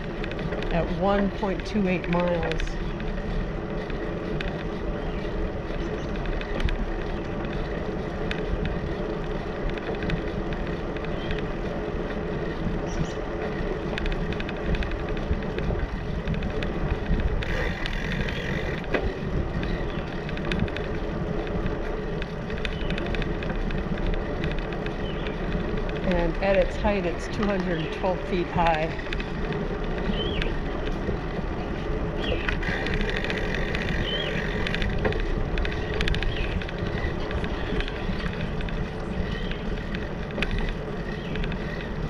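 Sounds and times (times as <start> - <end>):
bicycle tyres rolling on concrete: 0.0 - 42.0
small clicks and rattles: 0.0 - 42.0
wind on microphone: 0.0 - 42.0.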